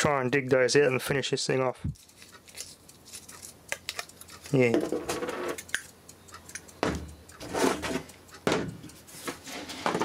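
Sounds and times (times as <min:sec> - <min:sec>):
metal parts rubbing and scraping: 0:07.4 - 0:08.1, 0:09.1 - 0:10.0
sudden knock on workbench: 0:08.5 - 0:08.8.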